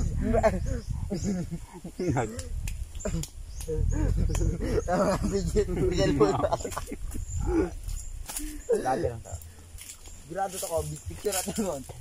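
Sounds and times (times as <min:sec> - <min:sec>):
young men talking and laughing: 0:00.0 - 0:12.0.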